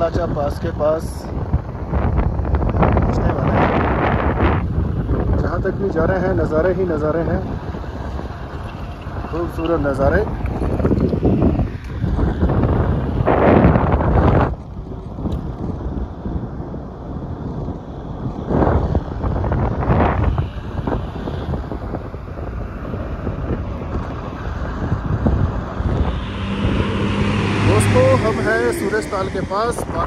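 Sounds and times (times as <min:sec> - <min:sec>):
wind buffeting microphone: 0:00.0 - 0:30.0
car road rumble: 0:21.8 - 0:30.0
steady low hum: 0:25.0 - 0:30.0.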